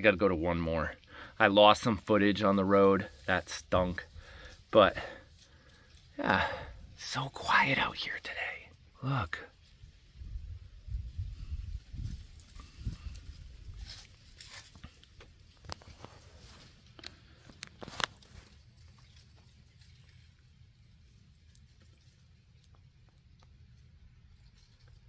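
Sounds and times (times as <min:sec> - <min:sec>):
low rumble on microphone: 0:09.6 - 0:16.6.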